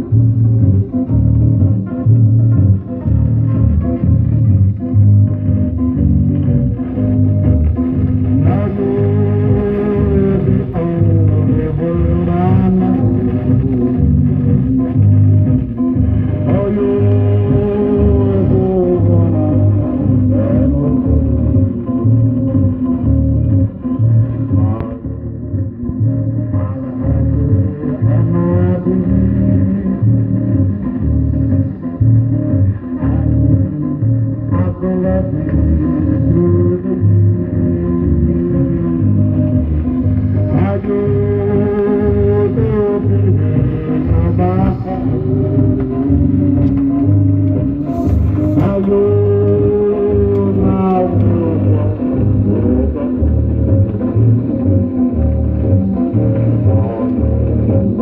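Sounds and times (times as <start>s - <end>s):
song with guitar and bass beat: 0.0s - 58.0s.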